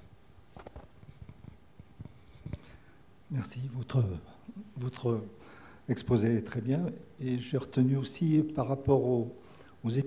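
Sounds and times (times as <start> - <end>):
small knocks and rustling: 0.5 - 2.7.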